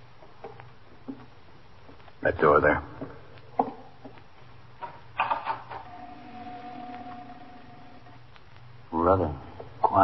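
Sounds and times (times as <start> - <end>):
long steady tone: 5.9 - 8.2.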